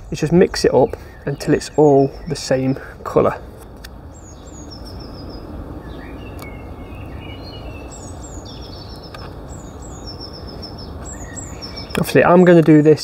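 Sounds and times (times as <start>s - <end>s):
low warbling bird calls: 0.0s - 13.0s
outdoor background noise: 0.0s - 13.0s
small birds chirping: 0.0s - 13.0s.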